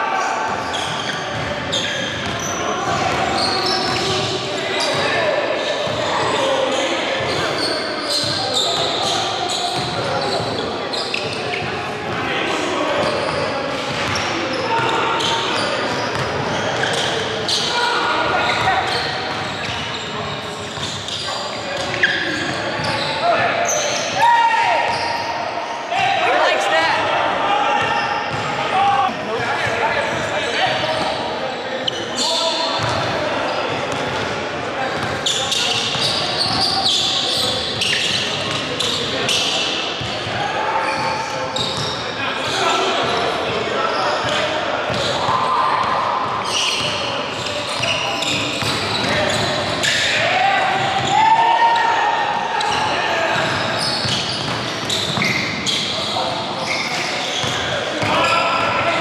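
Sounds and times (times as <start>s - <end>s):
players' voices: 0.0s - 59.0s.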